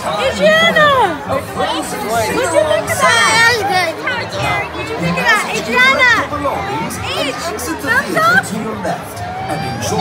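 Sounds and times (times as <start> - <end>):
crowd chatter: 0.0 - 10.0
excited children's voices: 1.8 - 8.5.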